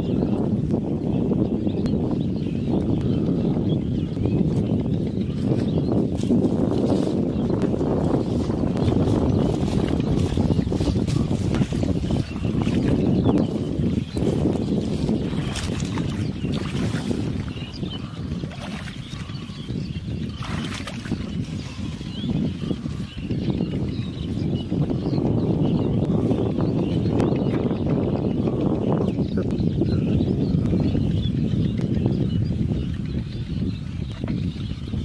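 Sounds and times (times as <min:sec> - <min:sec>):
wind on microphone: 0:00.0 - 0:35.0
water splashing from wading: 0:14.9 - 0:19.6, 0:20.3 - 0:21.8.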